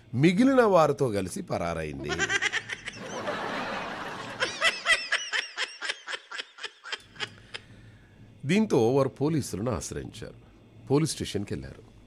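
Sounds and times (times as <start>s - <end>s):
person laughing: 2.0s - 3.5s, 4.2s - 7.6s.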